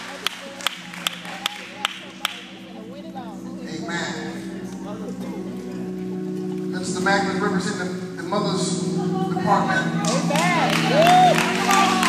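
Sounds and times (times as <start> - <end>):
audience handclaps: 0.0 - 2.6, 10.0 - 12.0
faint crowd murmur: 0.0 - 12.0
low keyboard chord: 0.0 - 12.0.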